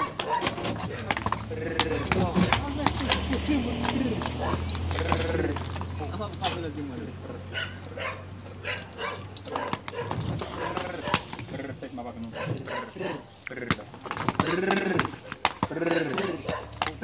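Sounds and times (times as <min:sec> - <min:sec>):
dog barking: 0:00.0 - 0:01.0, 0:04.4 - 0:04.7, 0:07.5 - 0:11.3, 0:12.3 - 0:13.3, 0:15.9 - 0:16.9
harness jingling: 0:00.0 - 0:17.0
horse hooves on concrete: 0:00.0 - 0:17.0.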